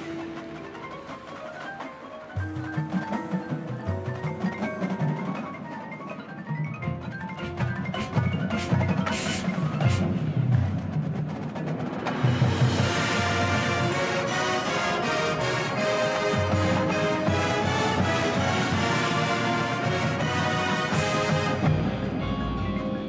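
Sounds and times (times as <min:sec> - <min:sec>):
mallet percussion runs: 0:00.0 - 0:10.5, 0:12.0 - 0:23.0
marching band held chords: 0:02.6 - 0:23.0.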